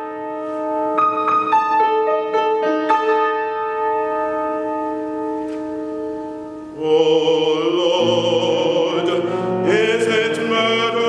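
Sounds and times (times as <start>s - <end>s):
piano sustained chords: 0.0s - 11.0s.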